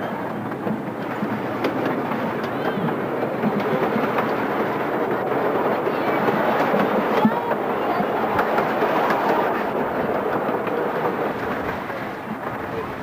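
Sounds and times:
miniature train wheels clattering: 0:00.0 - 0:13.0.

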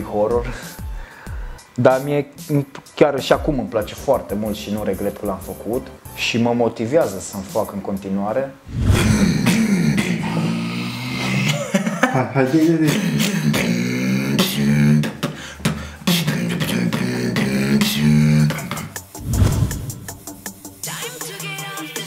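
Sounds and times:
man beatboxing: 0:08.9 - 0:11.6, 0:12.6 - 0:19.2.

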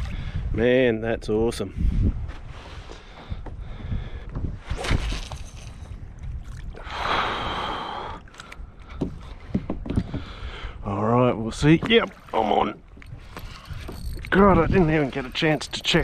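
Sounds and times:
water sloshing against kayak hull: 0:08.2 - 0:10.6, 0:11.5 - 0:16.0
light knocks on hull: 0:09.0 - 0:10.3.

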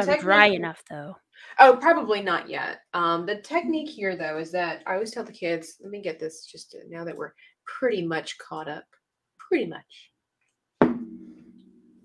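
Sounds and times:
sharp knock with low ringing: 0:10.8 - 0:11.6.

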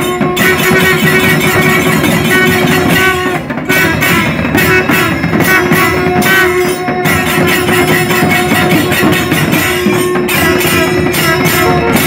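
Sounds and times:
fast dense drumming: 0:00.0 - 0:12.0
brass horns holding a note: 0:00.1 - 0:12.0.

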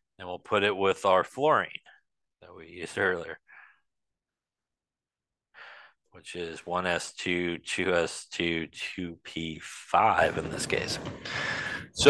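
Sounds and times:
man breathing: 0:03.5 - 0:03.9, 0:05.5 - 0:06.0, 0:11.0 - 0:12.0.

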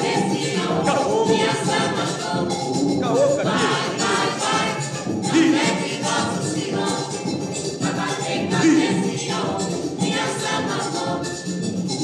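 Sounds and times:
choir singing a chant: 0:00.0 - 0:11.5.

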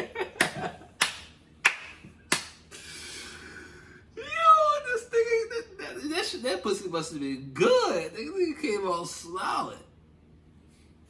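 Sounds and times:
laughter: 0:00.0 - 0:01.0
hand slaps: 0:00.4 - 0:02.7.

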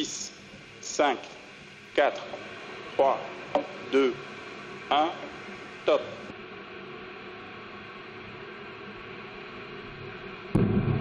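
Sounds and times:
faint hum: 0:00.0 - 0:11.0
steady low hiss: 0:00.0 - 0:11.0.

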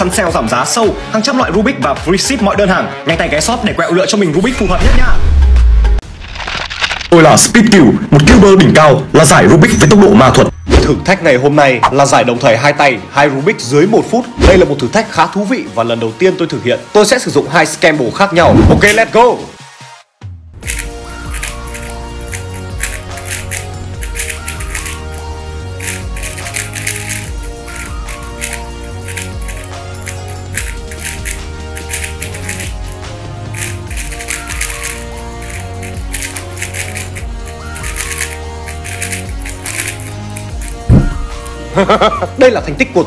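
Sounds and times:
background music with bass line: 0:20.2 - 0:43.0
speed cubes clicking: 0:20.7 - 0:25.0, 0:25.8 - 0:33.0, 0:33.6 - 0:40.8.

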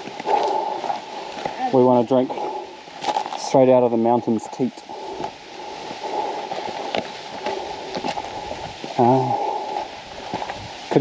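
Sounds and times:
footsteps on loose rocks: 0:00.0 - 0:03.7, 0:04.3 - 0:11.0
steady rushing noise: 0:00.0 - 0:11.0.

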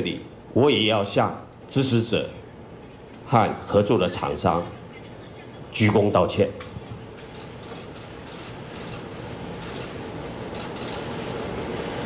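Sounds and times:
room noise hiss: 0:00.0 - 0:12.0
camera shutters clicking: 0:09.6 - 0:11.1.

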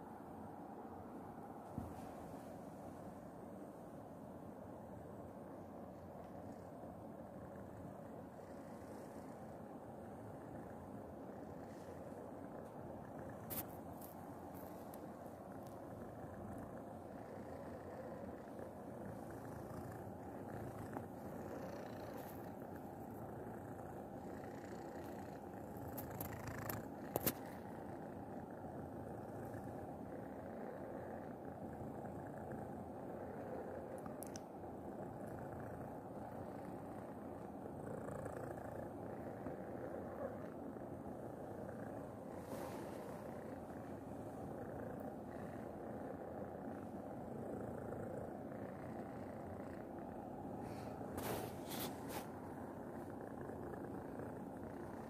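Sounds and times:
cat purring: 0:00.0 - 0:55.0.

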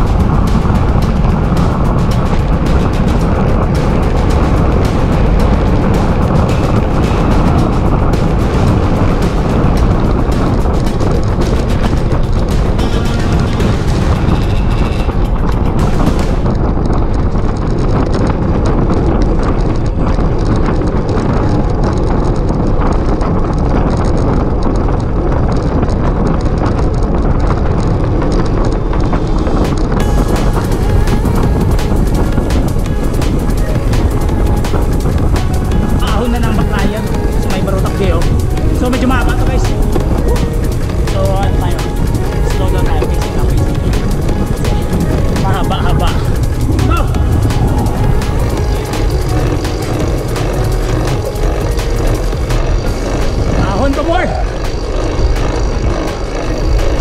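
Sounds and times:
music: 0:00.0 - 0:24.1, 0:28.1 - 0:57.0
wind buffeting microphone: 0:00.0 - 0:57.0
high hiss: 0:29.3 - 0:57.0.

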